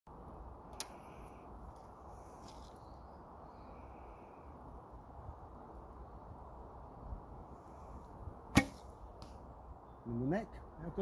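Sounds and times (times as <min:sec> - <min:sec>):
arrow clicking onto bowstring: 0:00.7 - 0:01.0.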